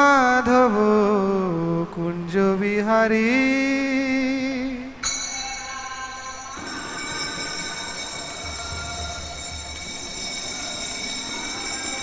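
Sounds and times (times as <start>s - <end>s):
devotional singing: 0.0s - 12.0s
bells and cymbals ringing: 5.0s - 12.0s.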